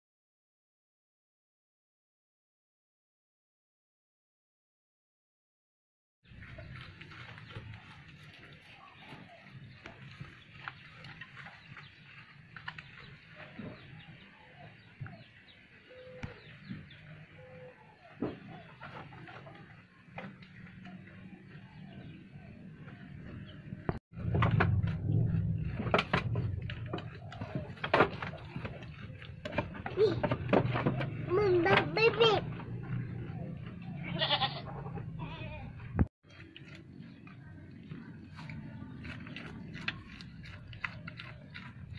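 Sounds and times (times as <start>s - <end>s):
grass rustling: 6.3s - 14.0s
poultry chirps and clucks: 6.3s - 24.0s, 25.6s - 41.9s
goat bleating: 33.9s - 35.9s.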